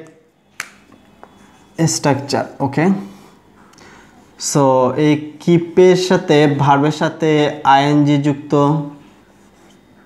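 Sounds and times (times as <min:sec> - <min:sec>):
person speaking: 0:01.8 - 0:03.4, 0:04.3 - 0:09.6.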